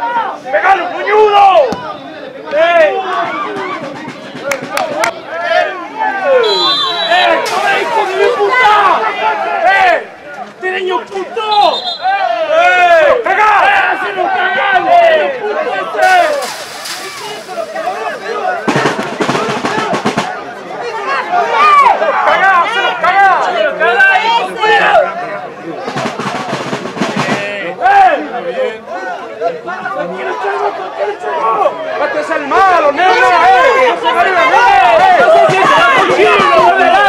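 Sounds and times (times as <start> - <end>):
men shouting: 5.2 - 25.3, 27.3 - 37.0
high whistle tones: 6.4 - 7.4, 11.5 - 12.2.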